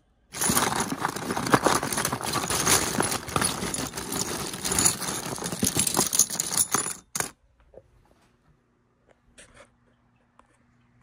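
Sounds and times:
computer chips clattering: 0.3s - 7.3s.

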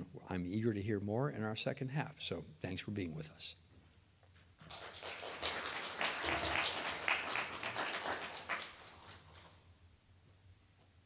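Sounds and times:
audience applauding: 4.6s - 9.5s.

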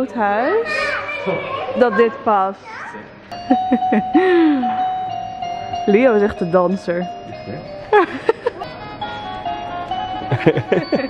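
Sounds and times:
electronic chime-like music: 3.3s - 11.0s.

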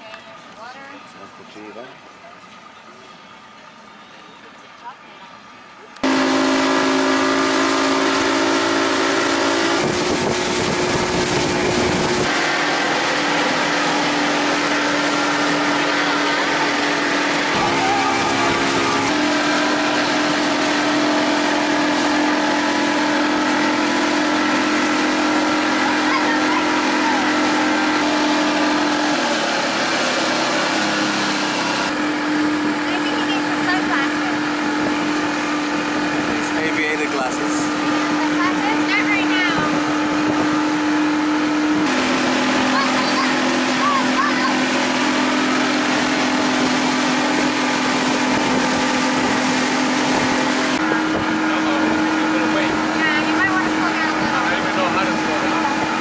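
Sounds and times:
outboard motor droning: 0.0s - 56.0s
rush of wind and water: 6.0s - 56.0s.

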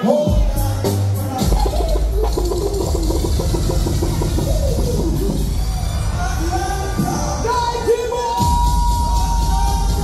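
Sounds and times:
dancehall music with heavy bass: 0.0s - 10.0s.

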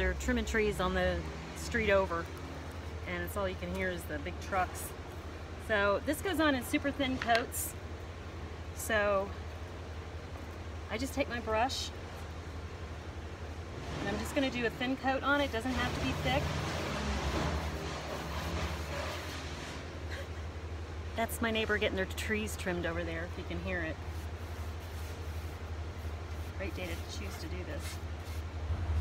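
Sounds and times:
truck engine rumble: 0.0s - 29.0s.

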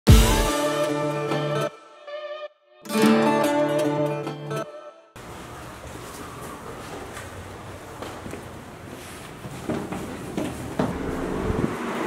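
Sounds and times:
held music chords: 0.1s - 5.0s.

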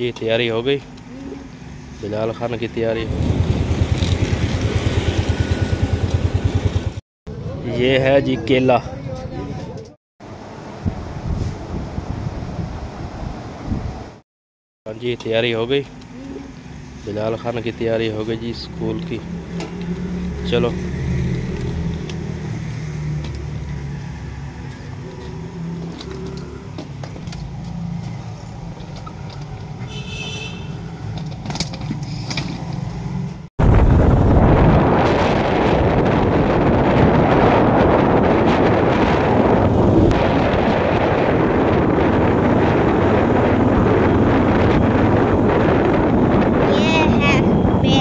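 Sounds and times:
wind and road noise in vehicle: 0.0s - 14.2s, 14.9s - 48.0s.

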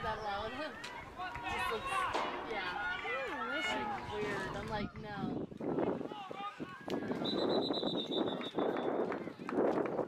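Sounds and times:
spectators talking and calling out: 0.0s - 7.6s
referee whistle trilling: 7.2s - 8.6s.

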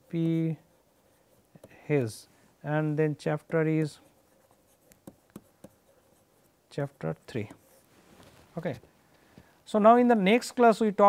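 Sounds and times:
stylus tapping and scratching: 0.0s - 2.3s, 3.4s - 8.9s.

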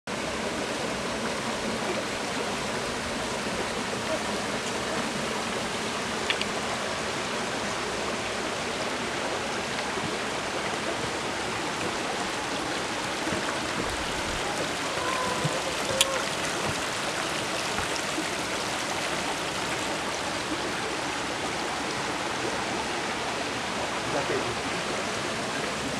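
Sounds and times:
stream water rushing over waterfall: 0.1s - 25.9s.

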